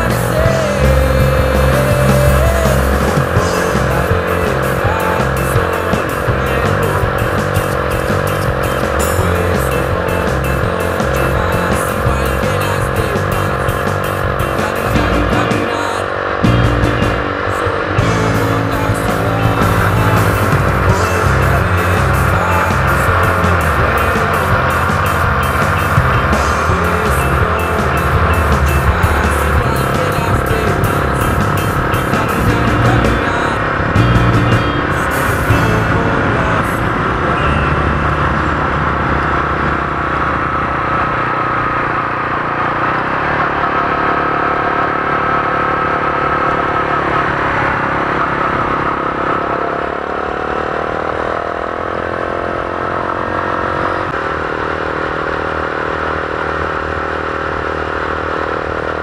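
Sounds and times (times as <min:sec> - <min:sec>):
vehicle engine accelerating: 0:00.0 - 0:59.0.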